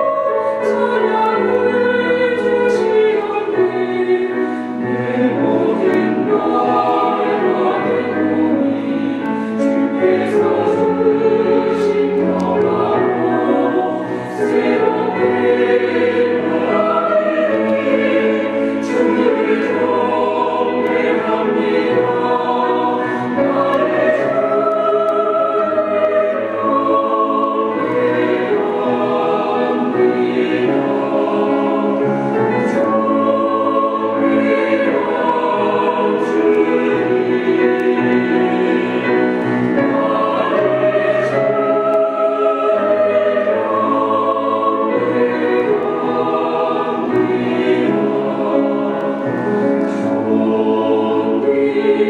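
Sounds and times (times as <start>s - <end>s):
mixed choir singing: 0.0s - 52.0s.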